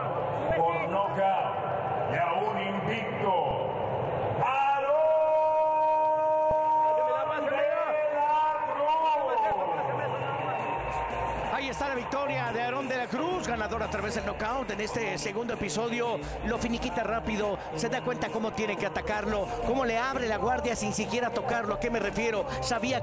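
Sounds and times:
man announcing: 0.0 - 3.8, 4.4 - 10.8, 11.4 - 23.0.

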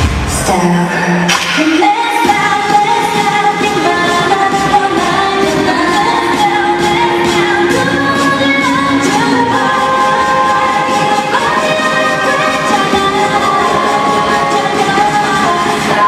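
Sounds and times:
pop dance track over speakers: 0.0 - 16.0.

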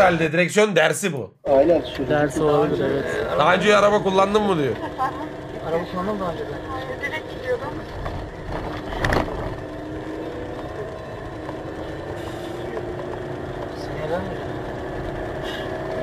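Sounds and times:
car engine at high revs: 1.5 - 16.0.

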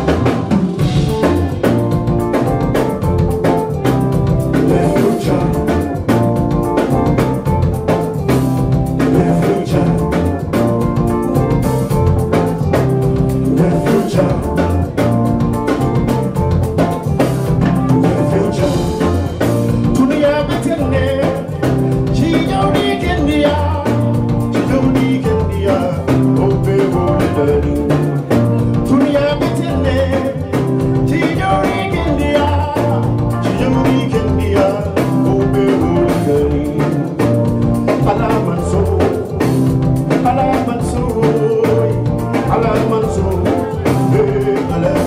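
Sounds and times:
drum kit beat: 0.0 - 45.0
electric bass: 0.0 - 45.0
keyboard: 0.0 - 45.0
man singing into a microphone: 4.5 - 6.4, 9.0 - 10.9, 13.4 - 15.2, 17.9 - 45.0.

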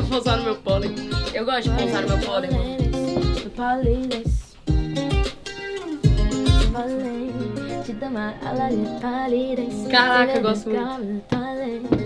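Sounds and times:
person singing: 0.0 - 5.0, 5.9 - 12.0
kick drum beat: 0.0 - 5.4, 6.0 - 6.8, 11.3 - 12.0
guitar: 0.0 - 12.0.

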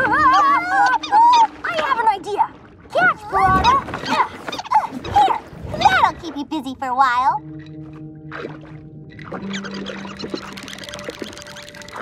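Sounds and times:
cartoon squeaky yelps: 0.0 - 1.6.

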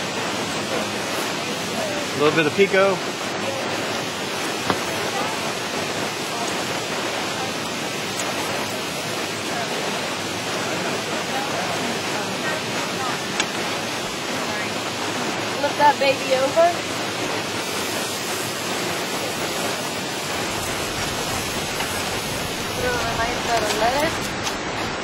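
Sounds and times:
steady rushing hiss: 0.0 - 25.0.

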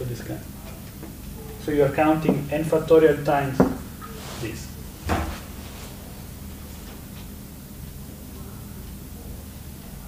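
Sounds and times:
low room hum: 0.0 - 10.0
short thump: 3.6 - 3.9.

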